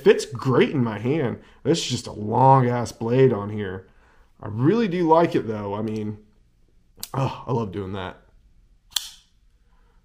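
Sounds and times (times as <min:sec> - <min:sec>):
folding knife snapping open: 0:08.9 - 0:09.3.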